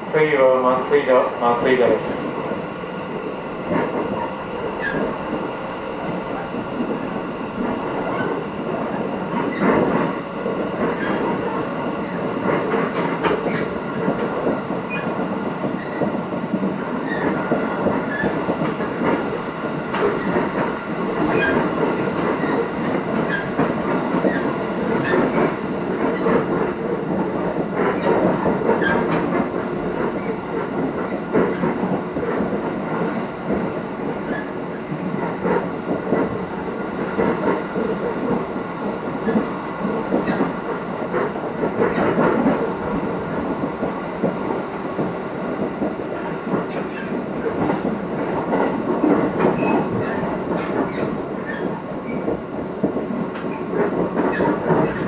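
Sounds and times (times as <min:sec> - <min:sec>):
train rolling rumble: 0:00.0 - 0:55.0
wheels clacking over rail joints: 0:06.1 - 0:55.0.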